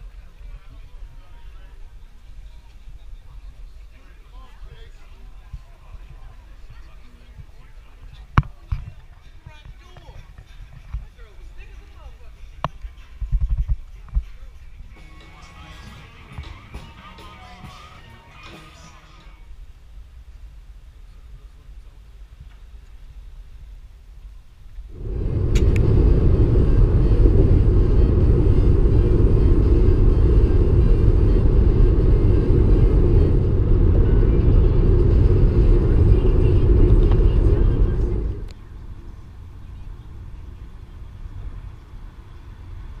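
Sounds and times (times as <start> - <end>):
road and wind noise in car: 19.4 - 43.0.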